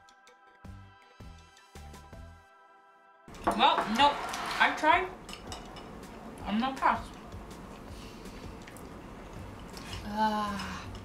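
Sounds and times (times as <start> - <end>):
sticky chewing sounds: 7.6 - 10.1.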